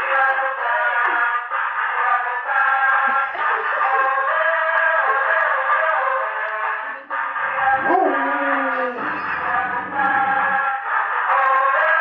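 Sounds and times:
tinny electronic melody through megaphone: 6.9 - 12.0.

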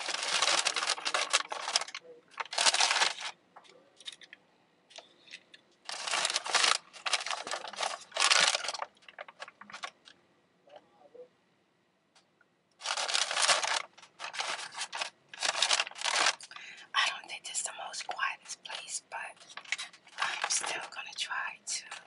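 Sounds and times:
paper packaging crinkling: 0.0 - 3.4, 4.0 - 10.2, 12.8 - 16.8, 17.9 - 22.0.

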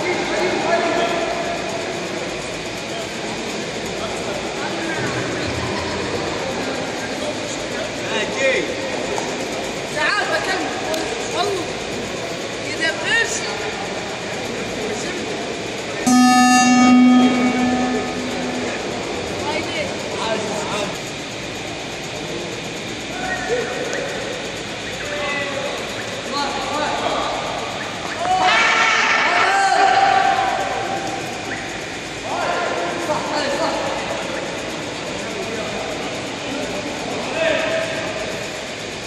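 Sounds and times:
crowd chatter: 13.6 - 21.0
person calling a long note: 16.1 - 19.2
loud buzzer: 16.1 - 19.4
hall noise: 16.1 - 19.8.

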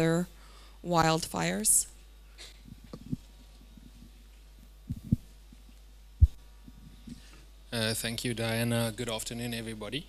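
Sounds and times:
low hum from sound system: 0.0 - 10.0
microphone handling thumps: 2.6 - 4.2, 4.9 - 7.2.

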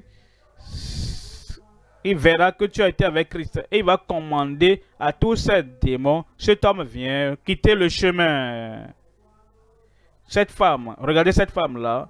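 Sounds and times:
loud breath close to microphone: 0.0 - 1.7
person speaking: 0.6 - 9.5.

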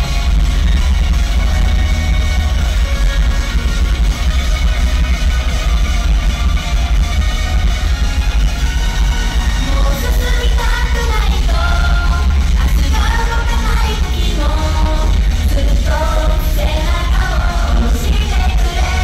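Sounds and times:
live dance music over speakers: 0.0 - 19.0.

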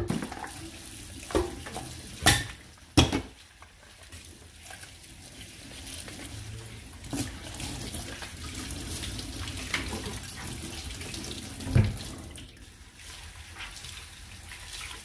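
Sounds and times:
pans knocking: 2.2 - 3.4
tap running into sink: 11.6 - 12.2.

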